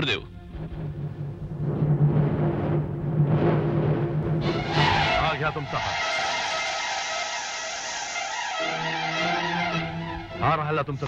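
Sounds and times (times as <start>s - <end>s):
dramatic film score: 0.0s - 11.0s
whooshing swell: 0.6s - 10.4s.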